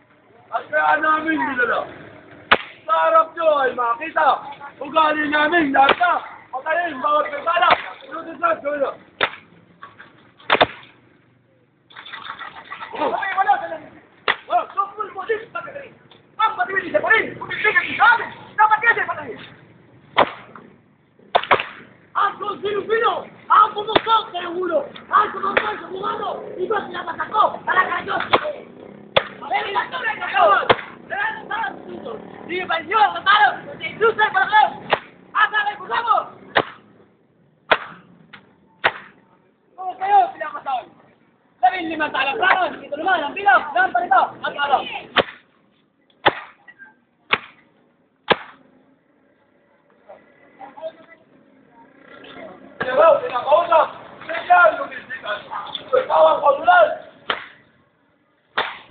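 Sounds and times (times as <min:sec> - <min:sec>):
whip lash: 0:02.5 - 0:02.8, 0:09.2 - 0:09.5, 0:10.5 - 0:10.9, 0:20.2 - 0:20.5, 0:21.3 - 0:21.9, 0:28.2 - 0:28.6, 0:30.7 - 0:31.0, 0:34.9 - 0:35.2, 0:36.5 - 0:36.9, 0:37.7 - 0:38.1, 0:38.8 - 0:39.2, 0:45.2 - 0:45.5, 0:46.2 - 0:46.6, 0:47.3 - 0:47.6, 0:48.3 - 0:48.6, 0:57.3 - 0:57.6, 0:58.6 - 0:58.9.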